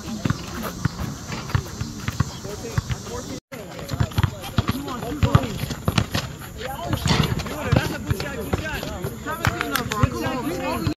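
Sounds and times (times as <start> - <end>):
basketball bouncing on asphalt: 0.0 - 10.9
players' voices: 0.0 - 11.0.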